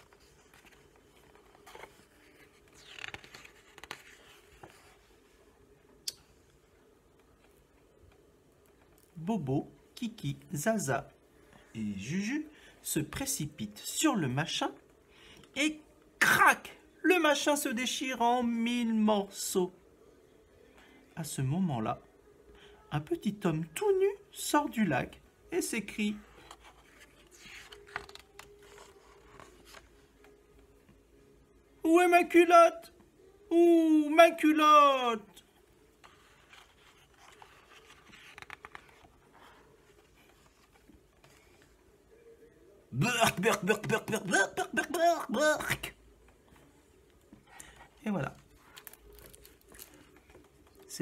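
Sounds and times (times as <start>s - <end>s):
book page turning: 0.0s - 5.5s, 25.8s - 30.9s, 35.4s - 42.0s, 43.0s - 51.0s.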